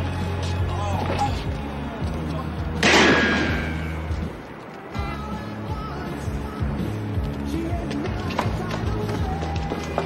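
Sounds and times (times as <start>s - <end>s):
loud ringing bang: 2.8s - 4.0s.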